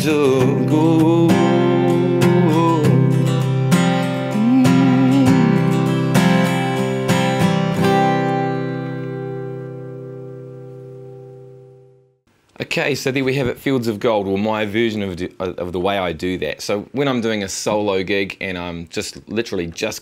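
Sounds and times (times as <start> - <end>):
acoustic guitar strumming: 0.0 - 12.2.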